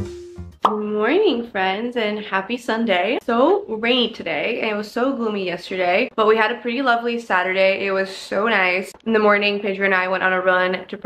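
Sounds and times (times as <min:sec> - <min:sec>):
background music: 0:00.0 - 0:00.7
woman speaking: 0:00.7 - 0:11.0.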